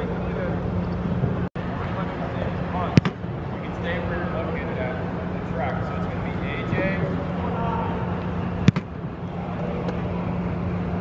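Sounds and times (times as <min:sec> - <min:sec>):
steady low hum: 0:00.0 - 0:11.0
foot kicking football: 0:02.9 - 0:03.2, 0:08.6 - 0:09.0.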